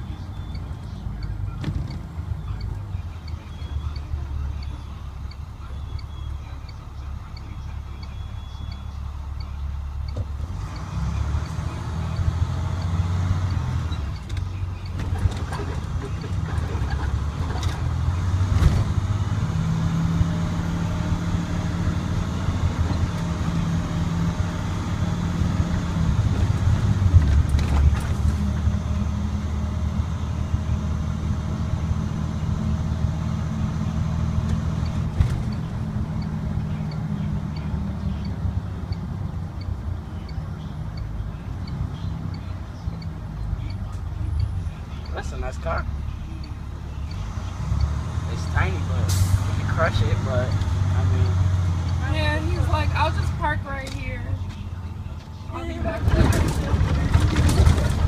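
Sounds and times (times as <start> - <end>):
bus diesel engine accelerating: 0.0 - 58.0
bus body knocks and rattles: 55.8 - 58.0.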